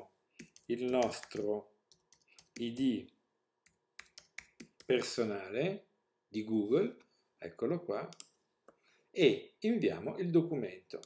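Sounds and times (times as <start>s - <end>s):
keyboard typing: 0.4s - 2.9s, 3.6s - 5.1s.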